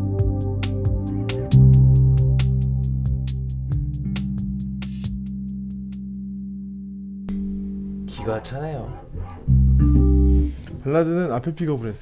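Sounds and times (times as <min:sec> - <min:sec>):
electric bass low held note: 0:00.0 - 0:10.6
man talking: 0:08.1 - 0:09.1, 0:10.8 - 0:12.0.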